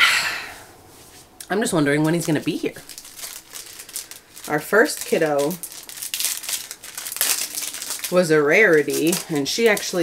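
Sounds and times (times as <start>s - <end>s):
wrapper crinkling: 1.7s - 10.0s.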